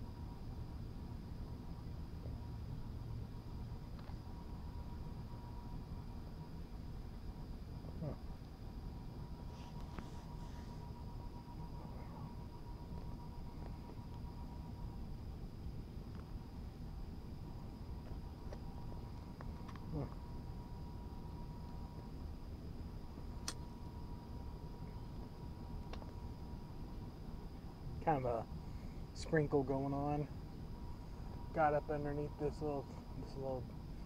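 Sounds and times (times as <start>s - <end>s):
steady low rumble: 0.0s - 34.0s
faint high-pitched tone: 9.3s - 15.2s, 16.6s - 22.2s, 23.2s - 34.0s.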